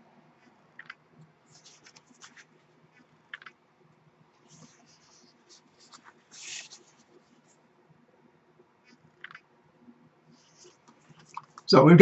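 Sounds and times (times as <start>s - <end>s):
book pages rustling: 1.5s - 3.5s, 4.4s - 7.6s, 10.3s - 11.7s.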